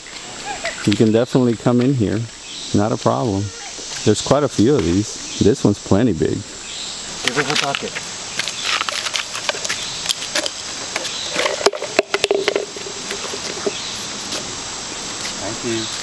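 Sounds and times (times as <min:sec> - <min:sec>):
insects droning: 0:00.0 - 0:16.0
child vocalising: 0:03.4 - 0:03.8
plastic toy buckets clicking: 0:11.3 - 0:13.8.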